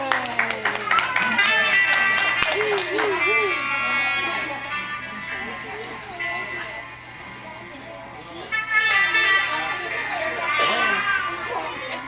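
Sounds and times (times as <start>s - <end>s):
overlapping talk of people: 0.0s - 12.0s
children's voices: 0.8s - 12.0s.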